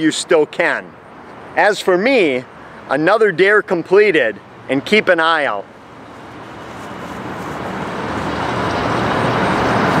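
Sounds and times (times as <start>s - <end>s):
rushing noise: 5.2s - 10.0s.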